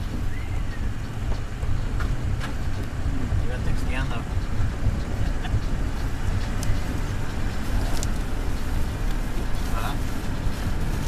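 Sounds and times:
car road and engine rumble: 0.0s - 11.0s.

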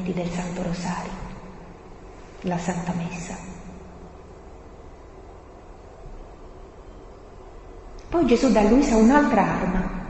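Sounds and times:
faint low hum: 0.0s - 10.0s
low background hiss: 0.0s - 10.0s.

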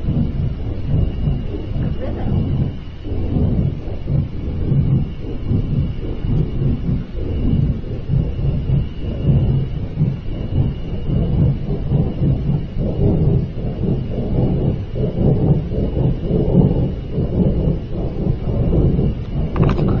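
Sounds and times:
loud low rumbling noise: 0.0s - 20.0s.

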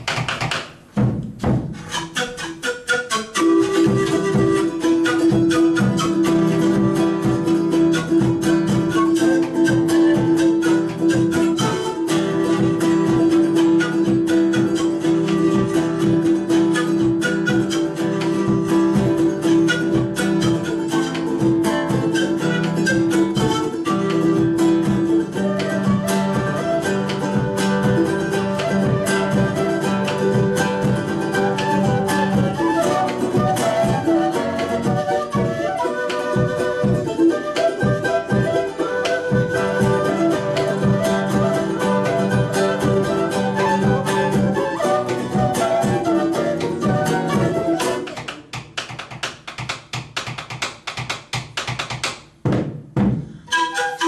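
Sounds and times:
drum: 0.0s - 2.4s, 3.5s - 54.0s
strummed plucked strings: 0.0s - 50.2s, 53.2s - 54.0s
panpipes melody: 1.8s - 48.2s, 53.5s - 54.0s
flute: 1.8s - 49.0s, 53.4s - 54.0s.

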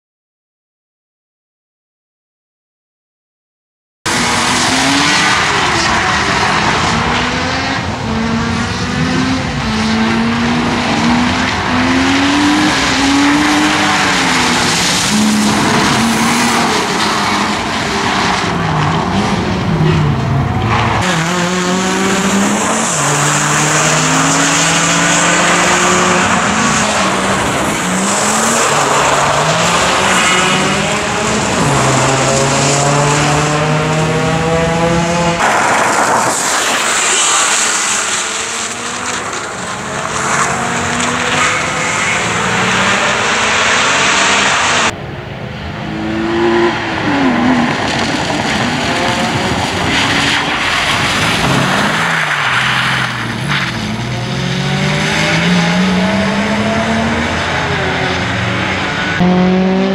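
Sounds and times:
rally car engine revving: 4.1s - 45.0s, 45.6s - 59.9s
tyres hissing on wet tarmac: 35.4s - 43.1s.

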